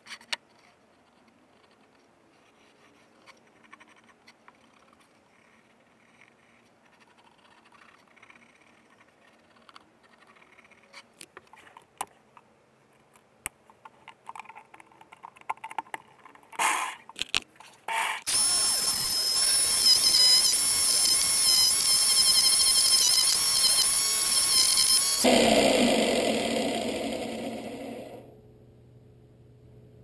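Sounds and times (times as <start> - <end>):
jigsaw motor whine: 18.3 - 28.2.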